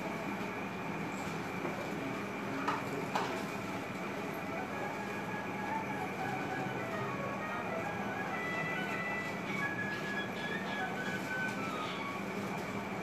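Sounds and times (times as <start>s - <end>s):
mechanical hum: 0.0s - 13.0s.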